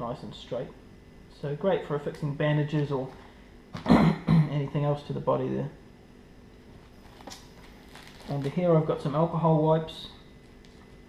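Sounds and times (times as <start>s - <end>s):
low room hum: 0.0s - 11.0s
light rustling of packets: 6.8s - 9.2s.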